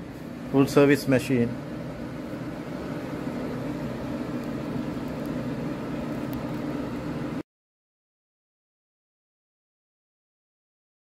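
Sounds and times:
low mechanical hum: 0:00.0 - 0:07.4.

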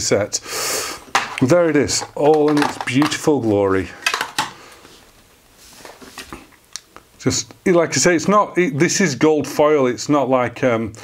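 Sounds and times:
faint wrapping rustle: 0:04.8 - 0:06.6.

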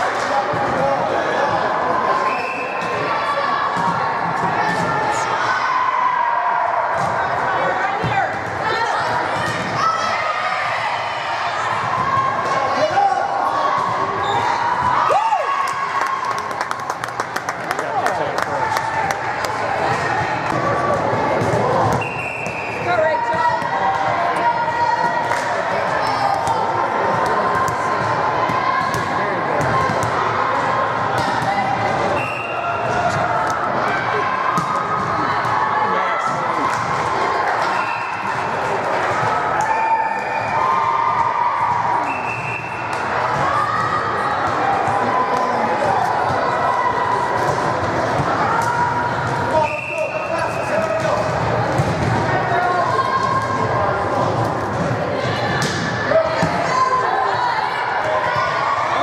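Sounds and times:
murmur of voices and calls: 0:00.0 - 0:59.0.

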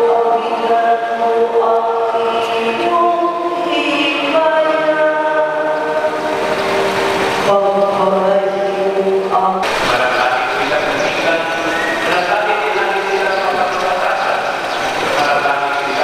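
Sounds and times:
choir singing long notes: 0:00.0 - 0:14.4.

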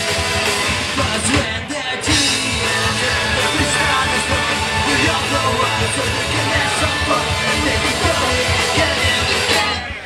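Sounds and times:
drums: 0:00.0 - 0:10.0
electric guitars: 0:00.0 - 0:10.0
man singing: 0:00.6 - 0:10.0.

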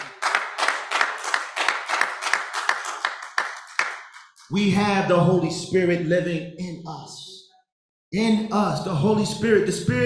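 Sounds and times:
rhythmic hand clapping: 0:00.0 - 0:04.5.

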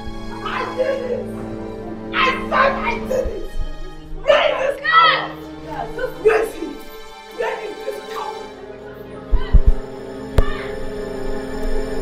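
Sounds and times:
music score of sustained tones: 0:00.0 - 0:12.0
women shouting and jeering: 0:00.3 - 0:03.5, 0:04.2 - 0:06.7, 0:09.2 - 0:09.7, 0:10.4 - 0:10.8.

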